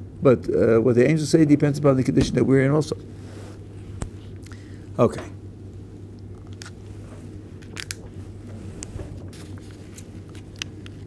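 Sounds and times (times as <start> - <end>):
steady low hum: 0.0 - 11.0
book pages rustling: 7.7 - 11.0.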